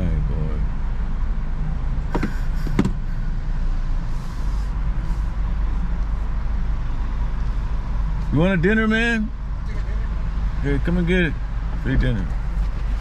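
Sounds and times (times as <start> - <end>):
car engine and road rumble: 0.0 - 13.0.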